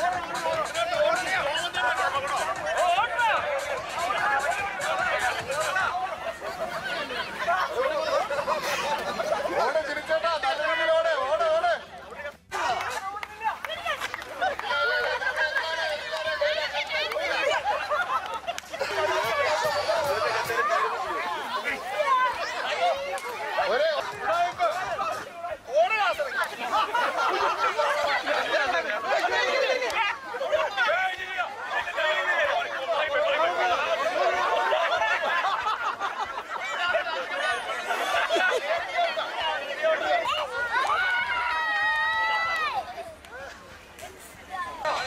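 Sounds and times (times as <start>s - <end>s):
crowd babble: 0.0s - 45.0s.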